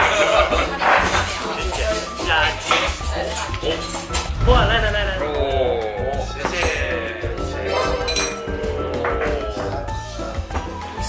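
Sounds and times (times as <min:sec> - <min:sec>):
background music: 0:00.0 - 0:11.0
bright glassy clink: 0:07.9 - 0:08.4.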